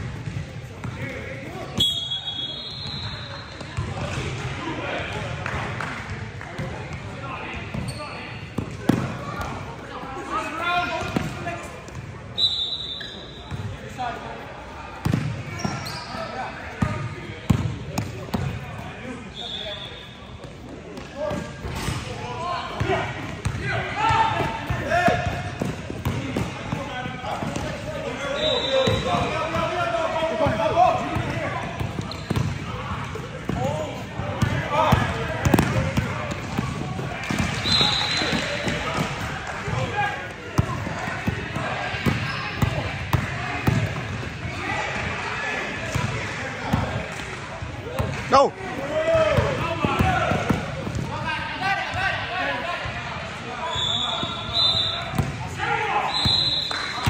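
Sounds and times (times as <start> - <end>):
sneaker squeaks: 1.7 - 4.2, 7.7 - 9.0, 12.3 - 13.8, 15.0 - 17.6, 19.2 - 20.7, 27.5 - 29.6, 31.8 - 32.7, 36.6 - 38.8, 41.9 - 42.8, 53.6 - 55.4, 56.0 - 57.0.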